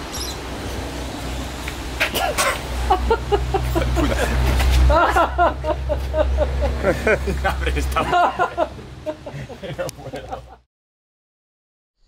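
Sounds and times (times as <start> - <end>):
men exclaiming and laughing: 2.8 - 10.6.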